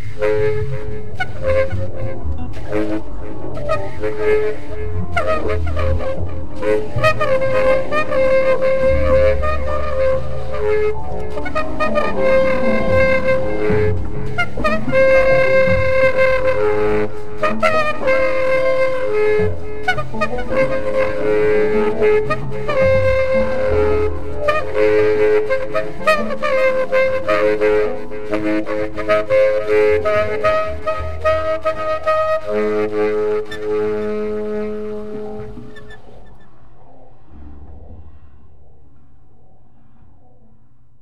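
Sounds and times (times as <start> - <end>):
upright bass notes: 0.0 - 33.9
tenor saxophone long notes: 0.0 - 38.0.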